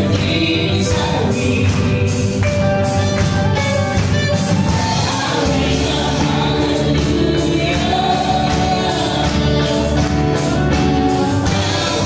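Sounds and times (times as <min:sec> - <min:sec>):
bass guitar: 0:00.0 - 0:12.0
electric guitar: 0:00.0 - 0:12.0
keyboard: 0:00.0 - 0:12.0
woman singing into a microphone: 0:04.8 - 0:09.9.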